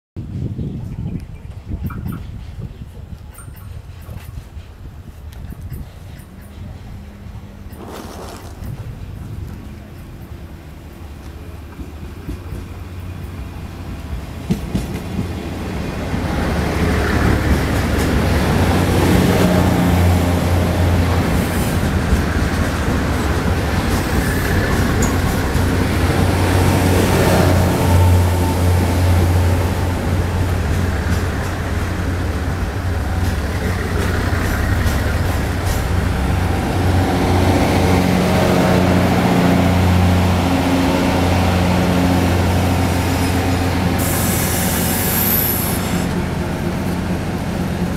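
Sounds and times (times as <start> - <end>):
train wheels on rails: 1.3 - 47.9
diesel engines droning: 15.2 - 47.9.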